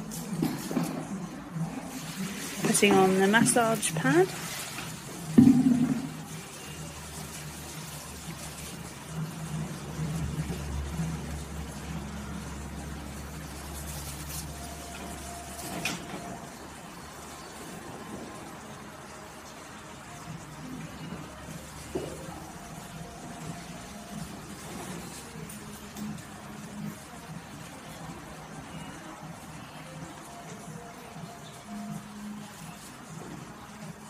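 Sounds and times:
faint music: 0.0 - 34.0.

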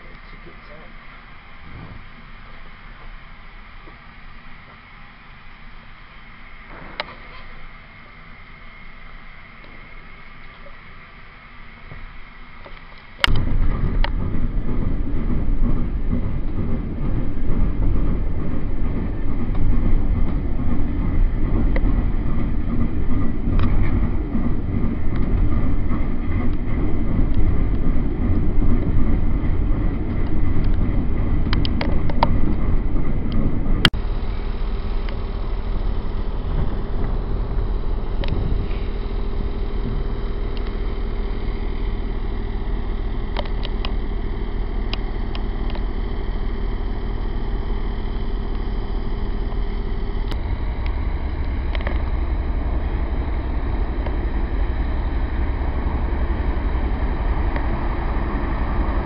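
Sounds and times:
steady hum with held tone: 0.0 - 59.0
train wheels rumbling: 0.0 - 59.0.

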